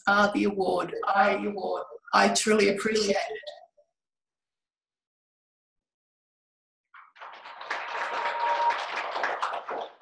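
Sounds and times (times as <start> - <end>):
applause: 7.0 - 10.0.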